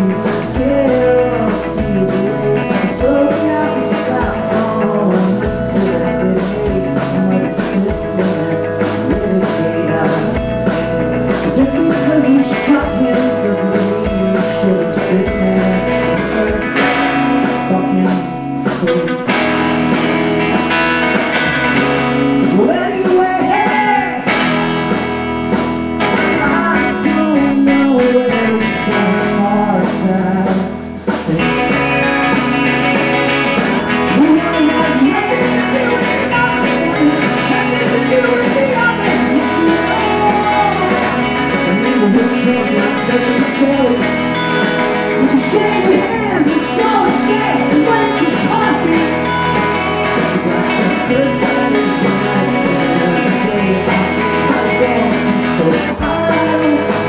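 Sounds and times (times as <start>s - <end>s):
rock band playing live: 0.0s - 57.0s.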